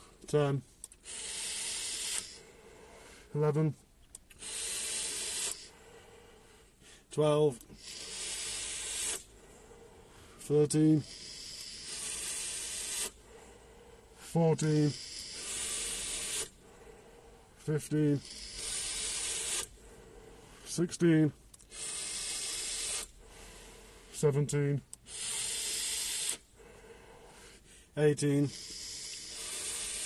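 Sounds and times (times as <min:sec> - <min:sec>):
vape hissing: 0:01.0 - 0:02.4, 0:04.3 - 0:05.8, 0:07.7 - 0:09.3, 0:11.0 - 0:13.2, 0:14.6 - 0:16.6, 0:18.1 - 0:19.8, 0:21.7 - 0:23.2, 0:25.0 - 0:26.5, 0:28.4 - 0:30.0.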